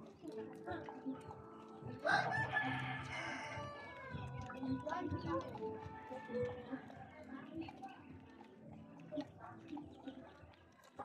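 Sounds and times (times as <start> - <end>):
rooster crowing: 2.0 - 4.1.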